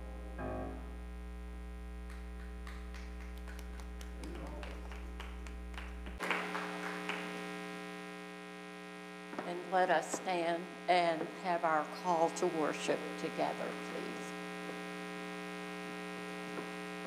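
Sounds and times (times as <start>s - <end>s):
electrical mains hum: 0.0s - 17.0s.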